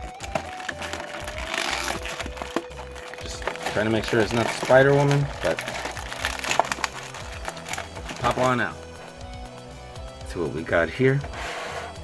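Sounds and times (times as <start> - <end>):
plastic blister tray crackling: 0.0 - 8.8
background music with low beat: 0.0 - 12.0.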